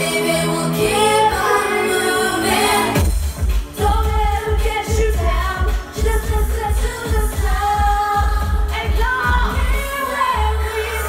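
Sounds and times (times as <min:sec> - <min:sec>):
pop dance music over pa system: 0:00.0 - 0:11.0
sung vocals: 0:00.0 - 0:11.0
steady bass beat: 0:03.0 - 0:10.5.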